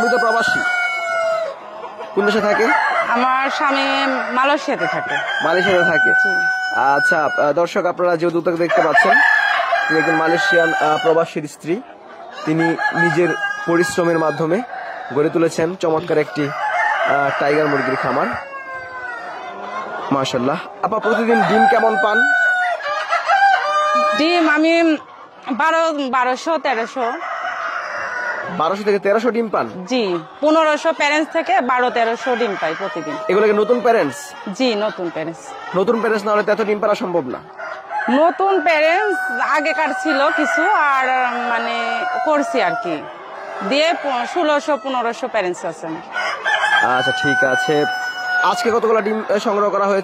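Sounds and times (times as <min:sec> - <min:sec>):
rooster crowing: 0:00.0 - 0:07.8, 0:08.6 - 0:11.4, 0:12.3 - 0:19.4, 0:20.9 - 0:25.0, 0:26.4 - 0:29.0, 0:29.8 - 0:34.8, 0:37.2 - 0:49.5.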